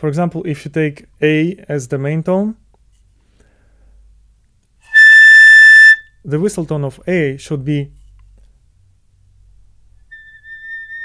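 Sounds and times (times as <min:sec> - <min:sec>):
piccolo playing a held note: 0:04.9 - 0:06.1, 0:10.1 - 0:11.0.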